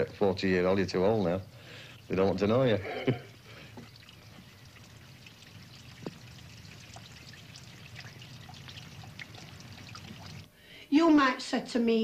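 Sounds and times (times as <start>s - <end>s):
water trickling into drain: 0.0s - 10.5s.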